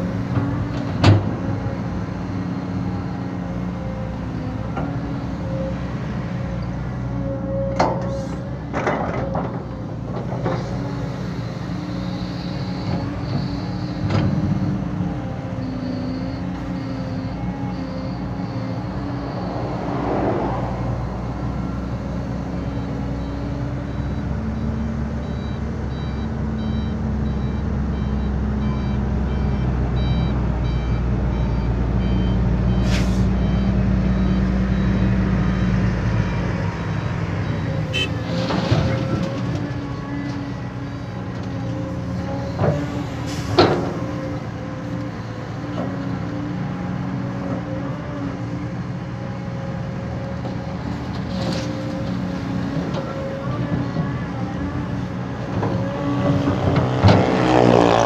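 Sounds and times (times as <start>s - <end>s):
diesel engines rumbling: 0.0s - 58.0s
reversing alarm beeping: 11.2s - 38.9s, 42.1s - 43.6s
air brake hisses: 32.8s - 33.4s, 43.2s - 43.6s.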